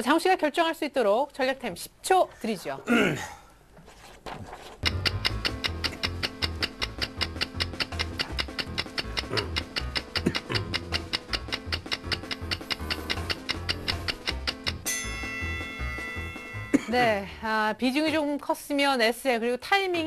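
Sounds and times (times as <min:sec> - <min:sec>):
fast clock-like ticking: 0:04.8 - 0:14.9
pulsing bass beat: 0:04.8 - 0:14.9
bright chime: 0:14.8 - 0:17.4.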